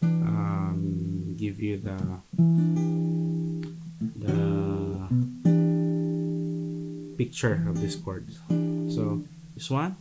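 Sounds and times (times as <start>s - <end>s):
acoustic guitar chord ringing: 0.0s - 1.3s, 2.3s - 9.6s.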